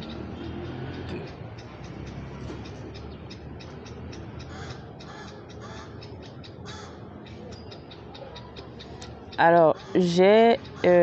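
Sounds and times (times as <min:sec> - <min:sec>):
bird cawing: 0:04.4 - 0:07.3, 0:09.7 - 0:11.0.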